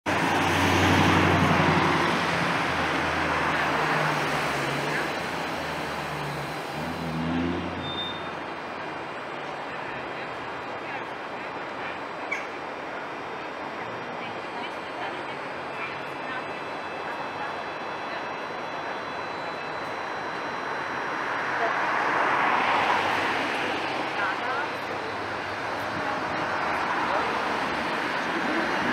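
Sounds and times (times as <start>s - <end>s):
street noise: 0.0s - 28.9s
tram rolling to a halt: 0.1s - 28.9s.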